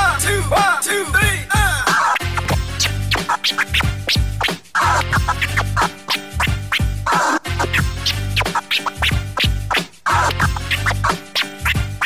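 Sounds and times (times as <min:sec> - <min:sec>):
hip-hop beat: 0:00.0 - 0:12.0
record scratching: 0:01.8 - 0:12.0.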